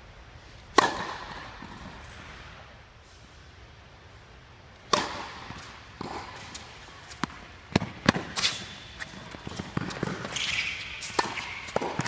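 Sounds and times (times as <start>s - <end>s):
tennis racket hitting ball: 0.7s - 2.3s, 4.9s - 12.0s.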